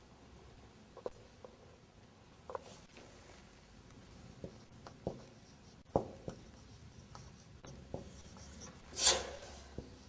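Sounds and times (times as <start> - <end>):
marker writing on whiteboard: 4.2 - 10.0
marker scraping stroke: 4.4 - 10.0.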